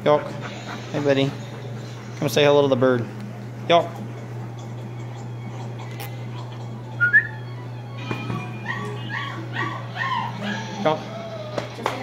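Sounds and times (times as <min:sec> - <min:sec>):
dog whining: 0:04.7 - 0:11.9.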